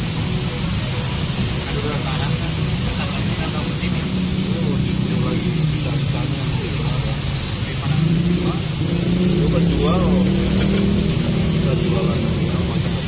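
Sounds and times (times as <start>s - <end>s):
vehicle engine running: 2.4s - 13.0s.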